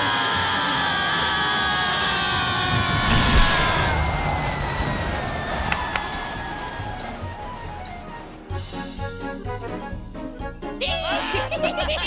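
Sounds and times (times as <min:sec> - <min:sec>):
cartoon characters screaming: 0:10.8 - 0:12.0.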